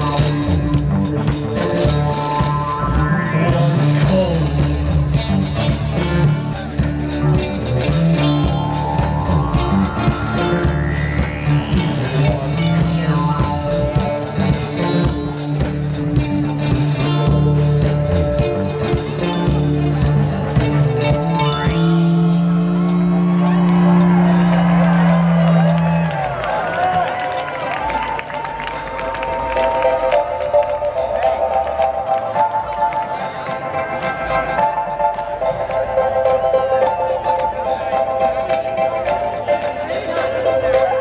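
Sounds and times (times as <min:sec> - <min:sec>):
crowd cheering: 0:00.0 - 0:14.8, 0:21.8 - 0:41.0
higher-pitched guitar riff: 0:00.0 - 0:27.8
heavy bass line: 0:00.0 - 0:41.0
live dance-punk band: 0:00.0 - 0:41.0.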